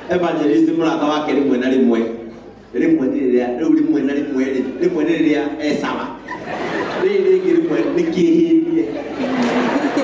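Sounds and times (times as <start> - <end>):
man chuckling: 9.2 - 10.0.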